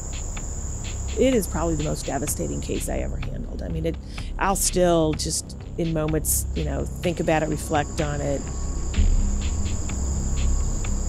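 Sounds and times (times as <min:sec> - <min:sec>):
crickets trilling: 0:00.0 - 0:11.0
deep low hum: 0:00.0 - 0:11.0.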